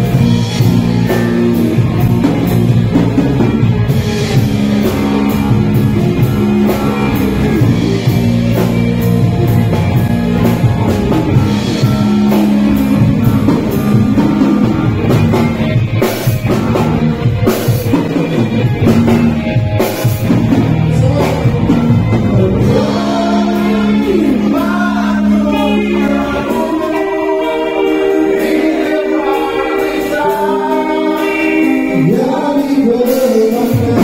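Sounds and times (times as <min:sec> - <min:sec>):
drum kit: 0:00.0 - 0:34.0
electric bass: 0:00.0 - 0:34.0
electric guitars: 0:00.0 - 0:34.0.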